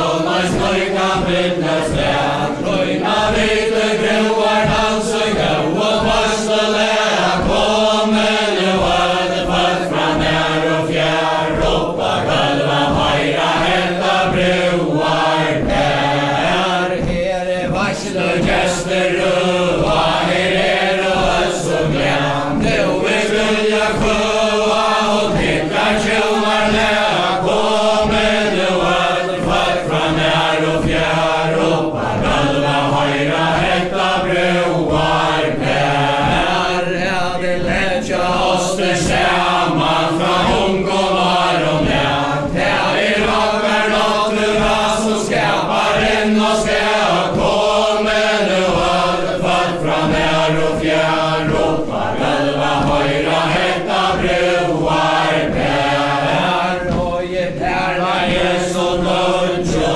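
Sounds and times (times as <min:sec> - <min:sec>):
footsteps thudding on wooden floor: 0:00.0 - 0:59.9
group singing in unison: 0:00.0 - 0:59.9.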